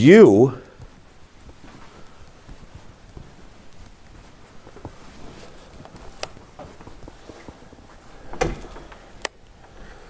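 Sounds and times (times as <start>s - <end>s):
door thudding: 8.3s - 9.1s.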